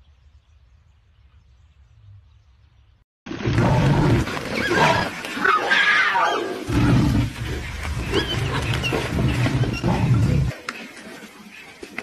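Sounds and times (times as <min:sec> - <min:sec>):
big cat roaring and growling: 0:03.4 - 0:10.5.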